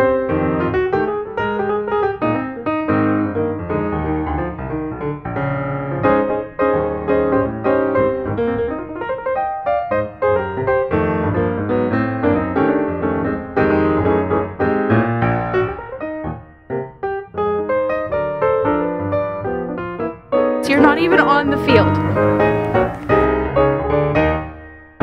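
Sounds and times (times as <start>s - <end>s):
piano melody over chords: 0.0s - 25.0s.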